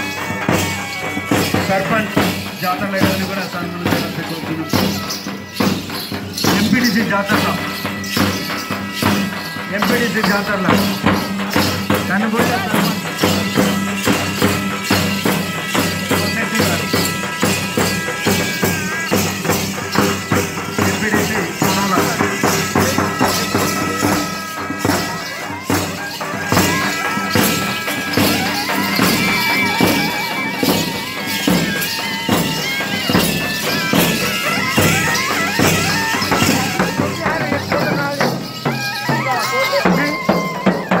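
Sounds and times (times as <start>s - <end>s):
fast drumming: 0.0s - 41.0s
jingling percussion: 0.0s - 41.0s
shrill reed pipe: 3.4s - 41.0s.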